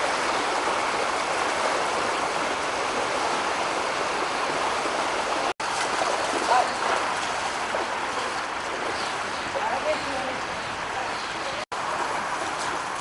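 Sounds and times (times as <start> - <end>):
rushing stream water: 0.0 - 13.0.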